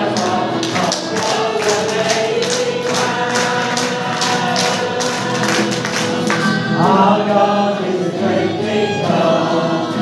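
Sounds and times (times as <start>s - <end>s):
hands clapping on the beat: 0.0s - 6.7s
congregation singing a worship song: 0.0s - 10.0s.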